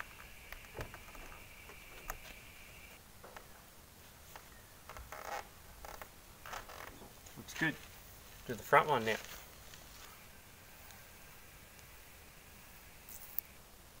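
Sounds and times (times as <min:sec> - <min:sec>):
faint high whine: 0:00.0 - 0:14.0.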